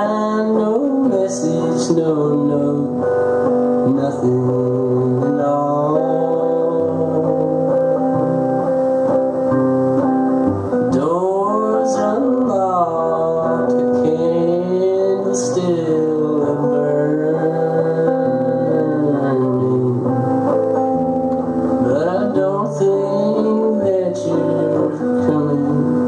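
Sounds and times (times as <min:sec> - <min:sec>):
man singing blues: 0:00.0 - 0:09.0, 0:10.7 - 0:26.0
acoustic guitar: 0:00.0 - 0:26.0.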